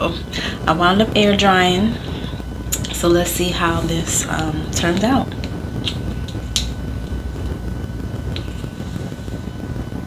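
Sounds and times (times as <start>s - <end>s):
air fan humming: 0.0s - 10.0s.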